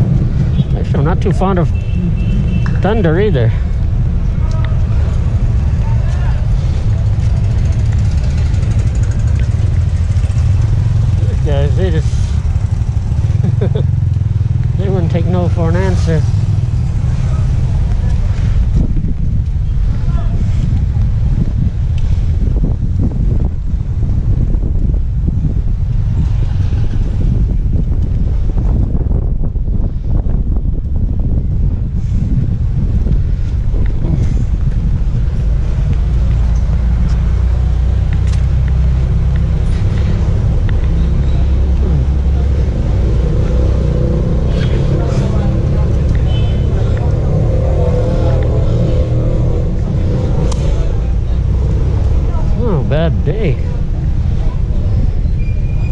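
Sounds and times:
wind on microphone: 0:00.0 - 0:11.1, 0:16.3 - 0:55.9
low rumble of traffic: 0:00.0 - 0:55.9
indistinct voices: 0:39.0 - 0:55.3.

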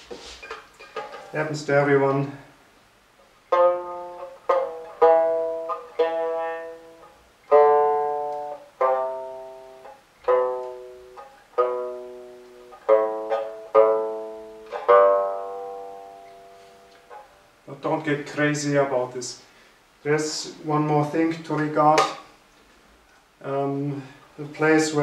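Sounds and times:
plucked lute notes: 0:00.4 - 0:02.3, 0:03.4 - 0:17.7.

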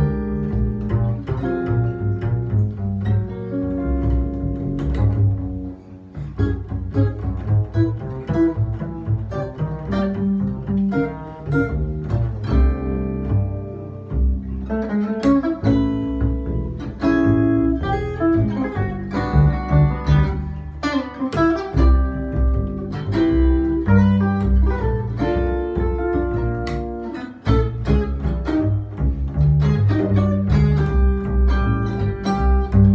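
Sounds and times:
amplified jazz guitar: 0:00.0 - 0:32.9
plucked upright double bass: 0:00.0 - 0:32.9.

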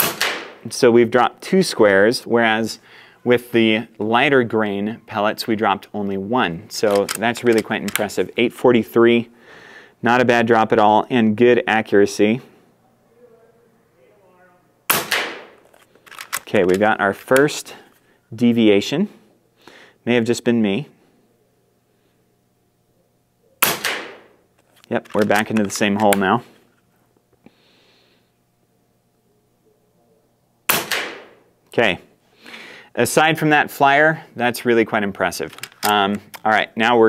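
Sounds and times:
air rifle shot: 0:00.0 - 0:00.6, 0:14.9 - 0:15.6, 0:23.6 - 0:24.4, 0:30.7 - 0:31.4.

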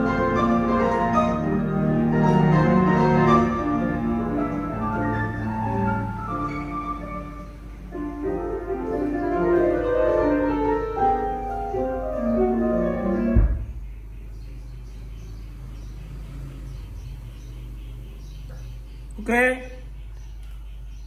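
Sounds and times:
piano music from a record: 0:00.0 - 0:14.2.

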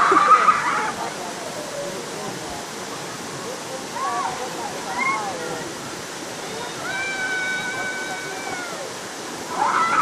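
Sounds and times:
waterfall rushing over rocks: 0:00.0 - 0:10.0.

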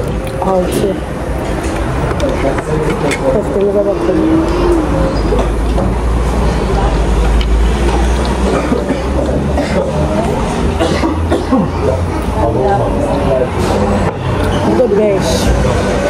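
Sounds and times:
woman speaking: 0:00.3 - 0:01.1, 0:02.2 - 0:04.8, 0:14.6 - 0:15.6.

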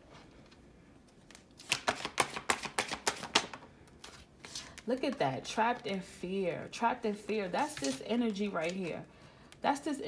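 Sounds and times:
cards being shuffled: 0:01.2 - 0:04.8, 0:07.6 - 0:08.9.

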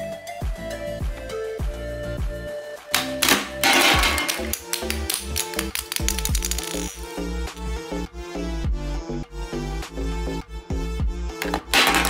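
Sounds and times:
background music: 0:00.0 - 0:12.0
plastic figures clattering on table: 0:03.0 - 0:07.0, 0:11.4 - 0:12.0
spring-loaded toy firing: 0:03.0 - 0:07.0.

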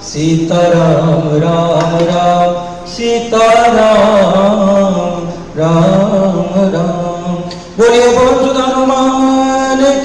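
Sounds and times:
devotional chanting: 0:00.0 - 0:10.0.

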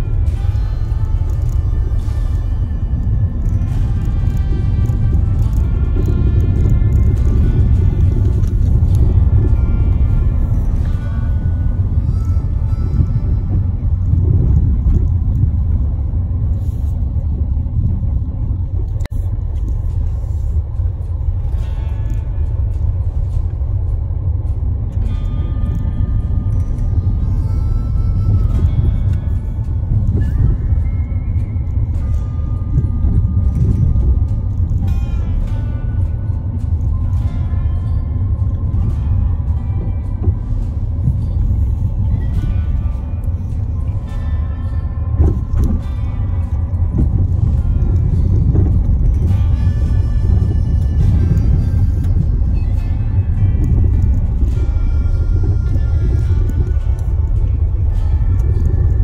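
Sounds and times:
car rumbling on bumpy dirt road: 0:00.0 - 0:59.0
music: 0:00.0 - 0:59.0.

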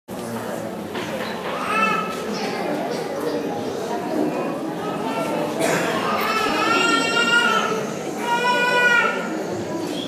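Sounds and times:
murmur of voices: 0:00.1 - 0:10.0.

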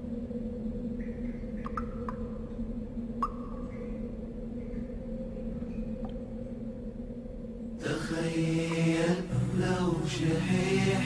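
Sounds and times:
low drone: 0:00.0 - 0:11.0.

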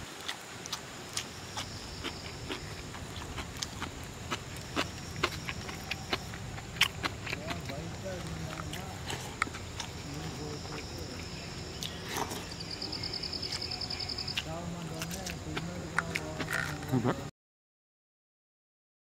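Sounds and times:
high insect hum: 0:00.0 - 0:17.3
chewing: 0:00.2 - 0:17.1.

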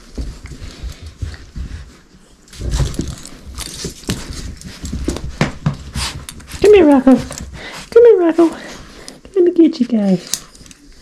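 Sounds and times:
hands handling dog leashes: 0:00.0 - 0:09.3, 0:10.0 - 0:11.0
small dogs scuffling: 0:00.0 - 0:11.0.

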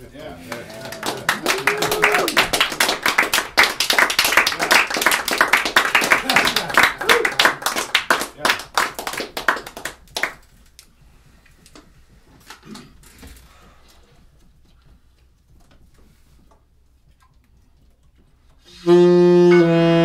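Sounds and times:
voices: 0:00.0 - 0:02.5
small audience clapping: 0:00.0 - 0:10.9.

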